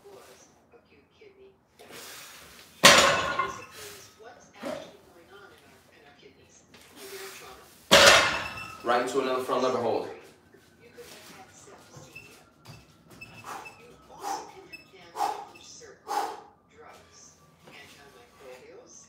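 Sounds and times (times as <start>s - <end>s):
barbell thud on floor: 7.9s - 8.7s
short hard breaths: 15.2s - 15.5s.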